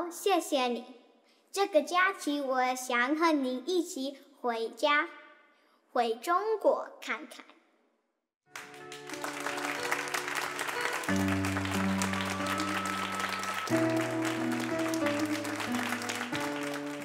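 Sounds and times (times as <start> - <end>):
audience applauding: 8.5 - 17.0
background music with held chords: 8.6 - 17.0.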